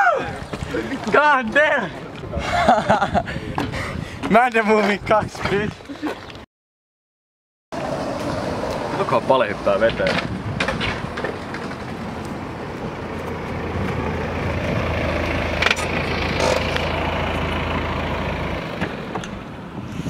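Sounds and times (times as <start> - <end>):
car engine rumble: 7.8 - 20.0.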